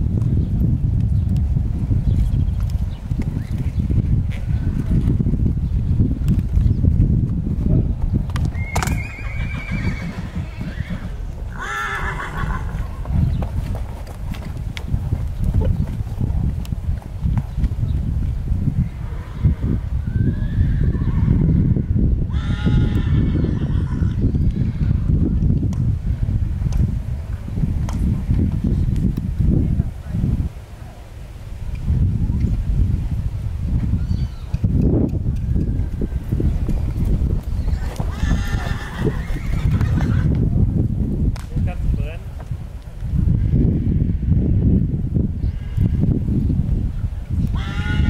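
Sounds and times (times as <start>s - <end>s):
horses whinnying: 8.5s - 13.2s, 19.0s - 25.0s, 37.5s - 40.4s, 47.5s - 48.0s.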